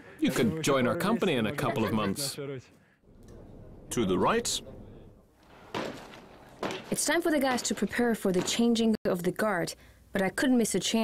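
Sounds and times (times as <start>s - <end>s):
thud: 5.5s - 8.8s.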